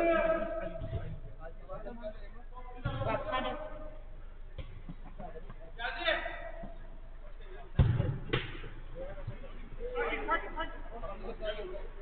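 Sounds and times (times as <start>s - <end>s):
football kicked hard thud: 7.8s - 8.6s
ball smacking into something: 7.8s - 8.7s.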